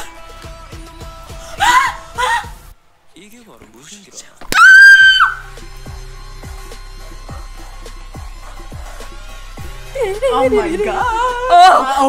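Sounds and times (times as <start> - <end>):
woman screaming excitedly: 1.6 - 2.5, 4.6 - 5.4
music track with bass and drum: 5.4 - 11.8.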